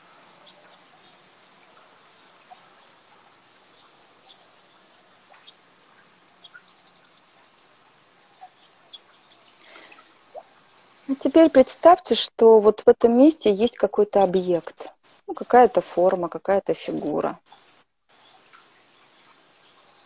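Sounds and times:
birds chirping: 0:00.0 - 0:11.8, 0:13.4 - 0:20.0
low steady hiss: 0:00.0 - 0:20.0.

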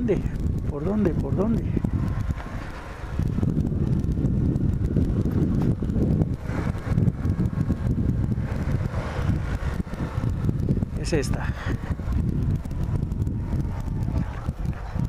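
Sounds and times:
motorcycle riding: 0:00.0 - 0:15.0
wind noise on microphone: 0:00.0 - 0:15.0.

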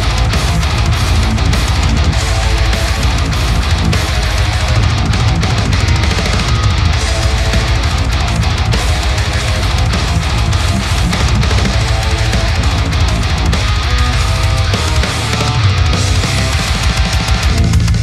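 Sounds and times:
heavy metal song: 0:00.0 - 0:18.0.

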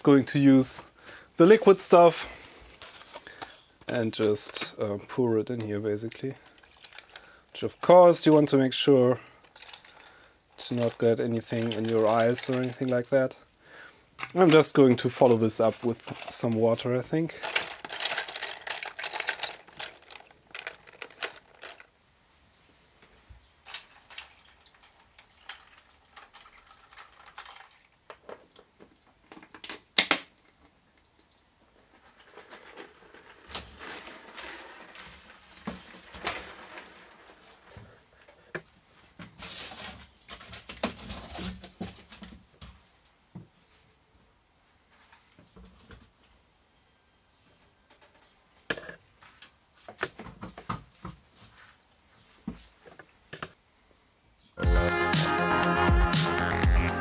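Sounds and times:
plastic keycaps clattering in liquid: 0:06.4 - 0:07.3, 0:09.4 - 0:13.1, 0:17.4 - 0:21.9, 0:23.7 - 0:28.0
box rustling: 0:14.2 - 0:21.9.

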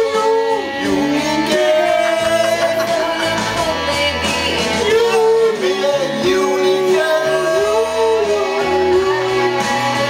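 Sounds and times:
guitar accompaniment: 0:00.0 - 0:10.0
man singing: 0:00.0 - 0:10.0.

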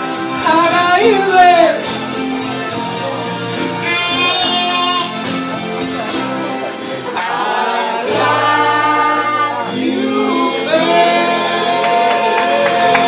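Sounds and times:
backing track through loudspeakers: 0:00.0 - 0:13.0
pop duet singing: 0:07.1 - 0:13.0.

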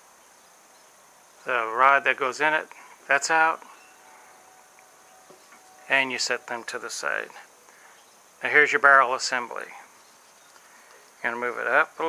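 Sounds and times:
thin steady hum: 0:00.0 - 0:12.0.

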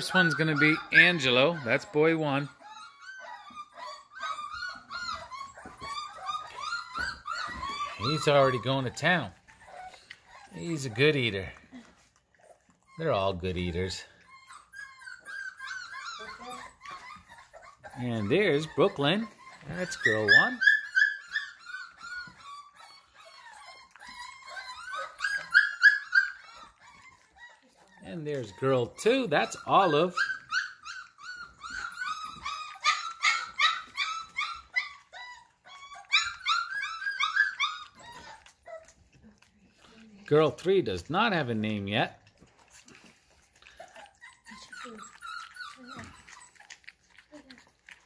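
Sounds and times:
puppies whining and yelping: 0:00.0 - 0:48.0.

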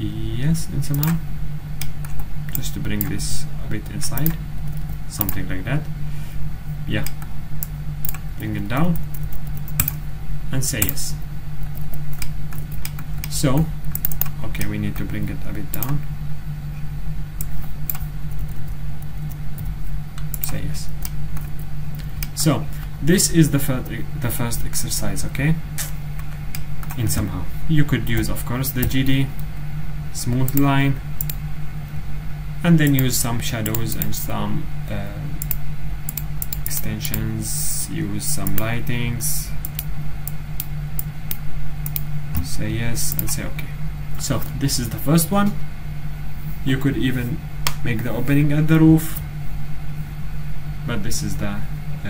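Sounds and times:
low background hum: 0:00.0 - 0:52.0
computer mouse clicks: 0:04.2 - 0:05.5, 0:07.0 - 0:08.2, 0:08.9 - 0:10.0, 0:11.6 - 0:15.1, 0:17.4 - 0:22.4, 0:30.3 - 0:31.4, 0:35.4 - 0:37.2, 0:39.6 - 0:42.5, 0:43.1 - 0:43.4.

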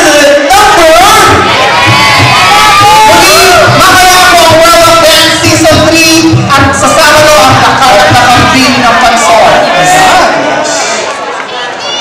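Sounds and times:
audience cheering and shouting: 0:00.0 - 0:12.0.

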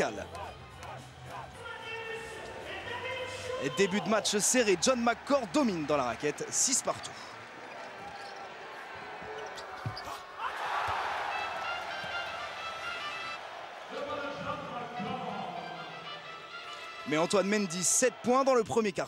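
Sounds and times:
background music: 0:00.0 - 0:07.6, 0:10.7 - 0:19.0
arena crowd noise: 0:00.0 - 0:19.0.

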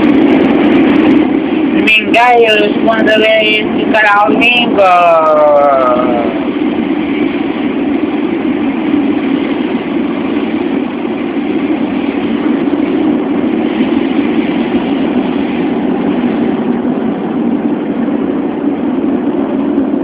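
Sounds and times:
metro train rumbling in tunnel: 0:00.0 - 0:20.0.

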